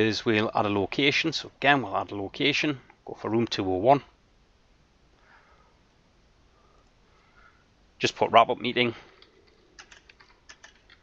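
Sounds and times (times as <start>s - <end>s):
computer keyboard typing: 9.0s - 11.0s.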